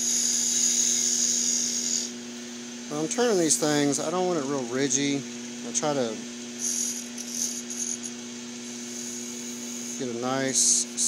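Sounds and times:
wood lathe humming: 0:00.0 - 0:02.2, 0:05.9 - 0:11.0.

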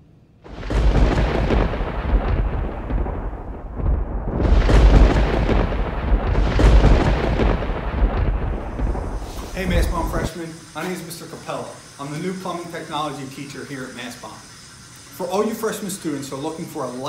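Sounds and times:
deep noisy rumble: 0:00.5 - 0:10.3.

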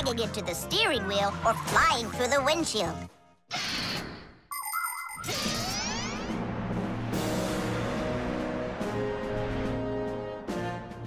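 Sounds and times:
background music: 0:00.0 - 0:03.4, 0:06.4 - 0:11.0
cartoon swish: 0:05.2 - 0:06.4.

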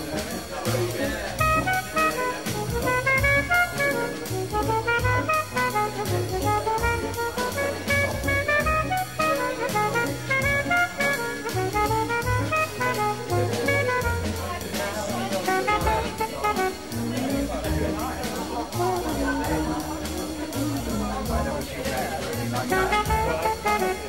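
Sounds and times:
bass: 0:00.0 - 0:24.0
drum kit: 0:00.0 - 0:24.0
jazz horn playing quick runs: 0:00.0 - 0:24.0.

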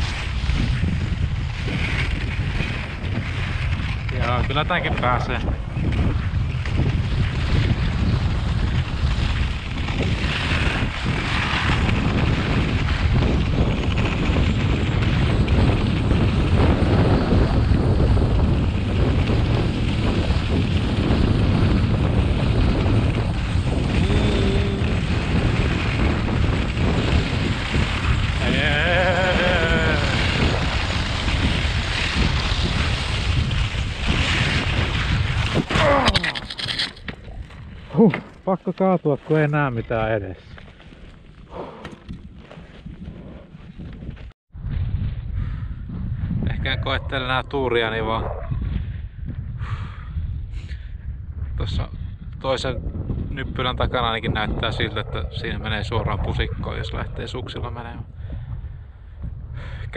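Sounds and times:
skis scraping over snow: 0:00.0 - 0:36.8, 0:37.4 - 0:44.3
wind rushing over microphone: 0:00.0 - 0:59.9
fall into snow: 0:23.8 - 0:36.8.

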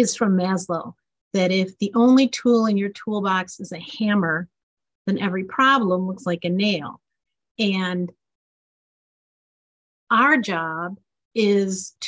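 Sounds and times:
woman speaking: 0:00.0 - 0:04.5, 0:05.1 - 0:07.0, 0:07.6 - 0:08.2, 0:10.1 - 0:12.0.

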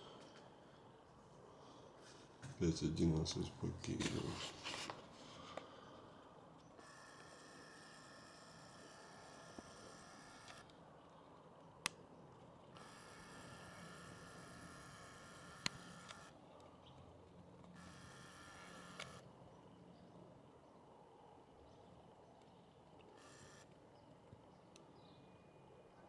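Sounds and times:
camera zoom motor whirring: 0:06.7 - 0:10.7, 0:12.7 - 0:16.4, 0:17.8 - 0:19.3, 0:23.0 - 0:23.7.

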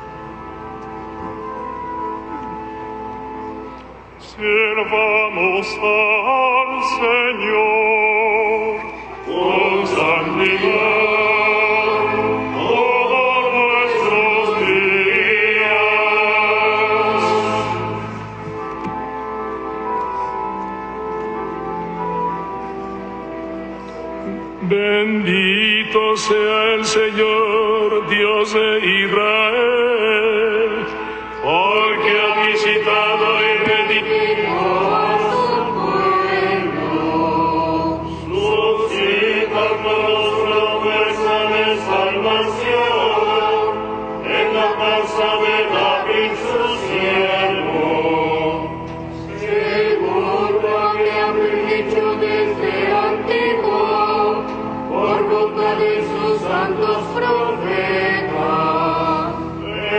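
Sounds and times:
sustained accompaniment: 0:00.0 - 0:59.9
liturgical chant singing: 0:04.2 - 0:19.1, 0:24.2 - 0:59.9.

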